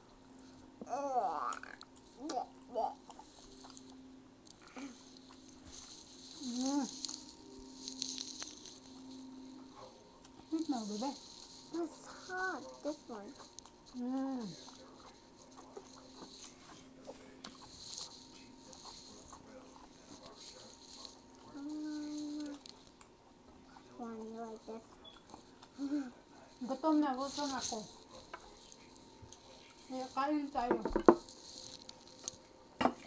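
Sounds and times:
faint steady hum: 0.0s - 33.0s
chewing and mouth noises: 1.4s - 26.6s.

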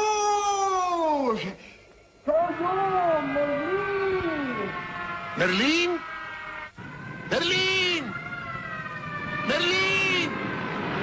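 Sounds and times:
siren wailing: 2.3s - 11.0s.

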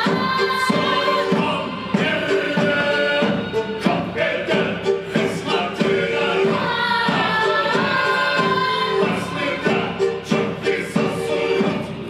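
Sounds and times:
music with regular beat: 0.0s - 12.0s
voices singing together: 0.0s - 12.0s.

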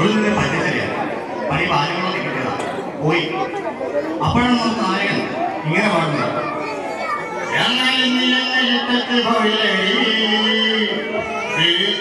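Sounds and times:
man speaking over microphone: 0.0s - 6.6s, 7.4s - 12.0s
children chattering and calling: 0.0s - 12.0s.

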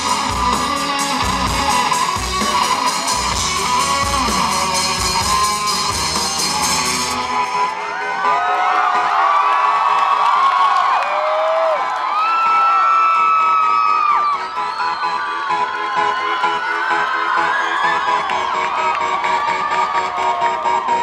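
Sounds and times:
crowd cheering and screaming: 0.0s - 21.0s.

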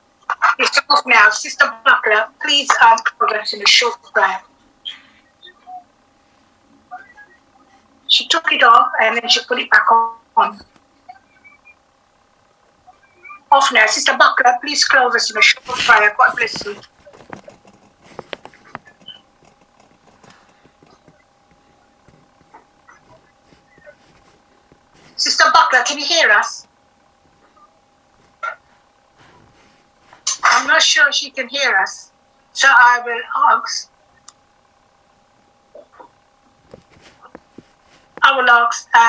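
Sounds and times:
faint steady hum: 0.0s - 39.0s
faint clicks and taps: 10.6s - 10.9s, 15.7s - 25.2s, 35.4s - 38.3s.

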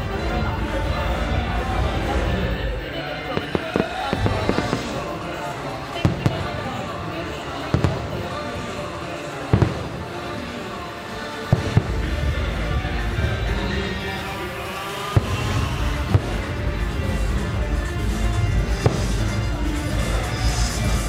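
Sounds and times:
music: 0.0s - 21.0s
voices: 0.0s - 21.0s
fireworks bangs: 1.3s - 21.0s.

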